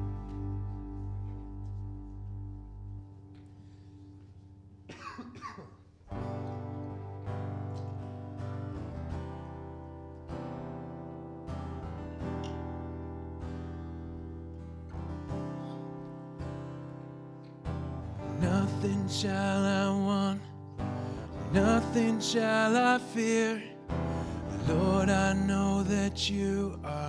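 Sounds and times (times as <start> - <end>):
keyboard: 0.0 - 5.0
acoustic guitar chords: 0.0 - 27.0.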